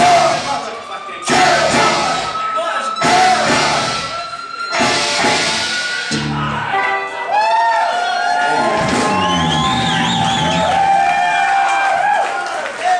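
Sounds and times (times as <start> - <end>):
audience cheering and shouting: 1.3 - 2.4, 3.0 - 4.1, 4.8 - 12.9.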